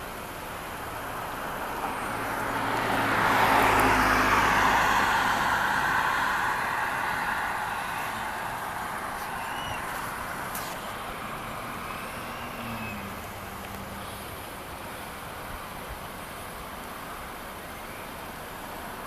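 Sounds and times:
vehicle driving past: 1.4 - 14.4.

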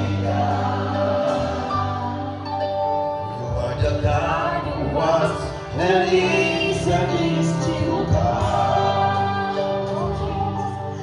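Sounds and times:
group singing gospel: 0.0 - 11.0
low musical accompaniment: 0.0 - 11.0.

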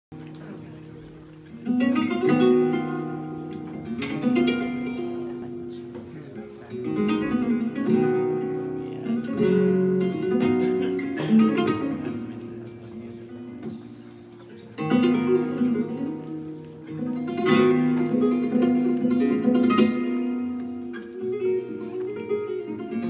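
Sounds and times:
flamenco guitar chords: 0.1 - 23.0.

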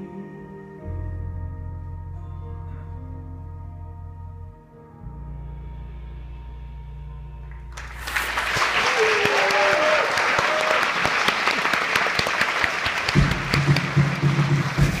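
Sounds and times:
low rhythmic music: 0.0 - 8.5, 13.1 - 15.0
audience clapping: 7.7 - 15.0
audience whooping: 7.8 - 15.0.

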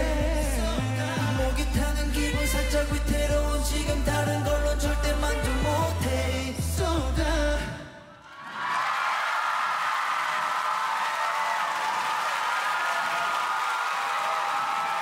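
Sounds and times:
audience cheering and screaming: 8.2 - 15.0.

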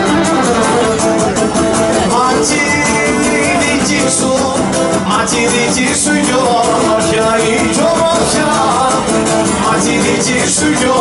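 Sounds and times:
bowed string melody: 0.0 - 3.1
lutes strumming fast rhythm: 0.0 - 11.0.

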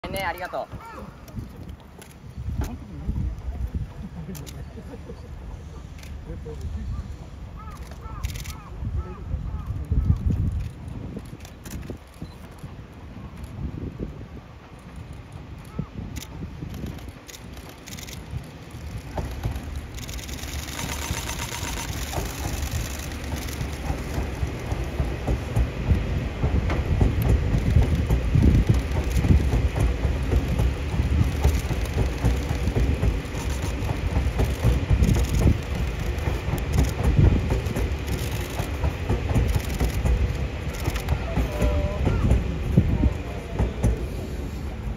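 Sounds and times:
train wheels running on rails: 0.0 - 44.9.

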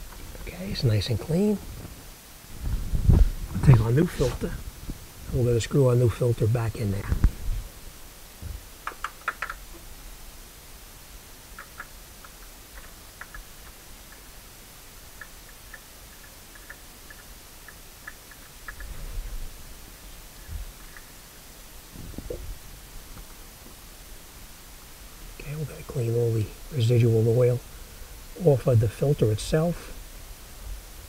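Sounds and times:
dull low bumps: 1.6 - 5.6, 21.9 - 23.8.

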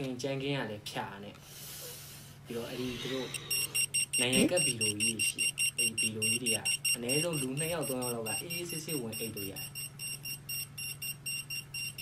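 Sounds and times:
electronic alarm beeping: 3.3 - 12.0.

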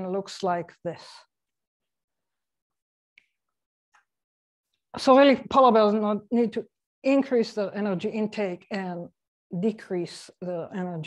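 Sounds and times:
woman's voice: 0.0 - 1.3, 5.0 - 11.0.

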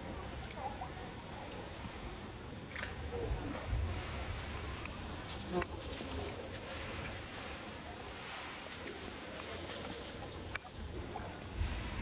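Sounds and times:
outdoor ambience: 0.0 - 12.0.

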